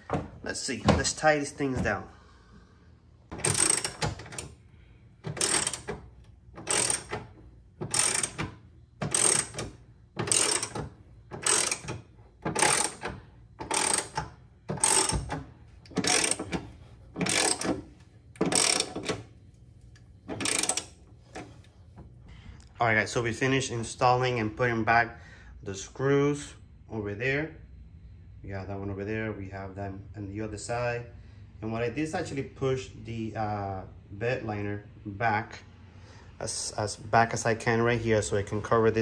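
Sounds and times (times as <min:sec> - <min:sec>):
ratchet wrench clicking: 0:03.4 - 0:04.5, 0:05.3 - 0:06.0, 0:06.6 - 0:16.6, 0:17.2 - 0:17.8, 0:18.4 - 0:19.2, 0:19.9 - 0:21.0.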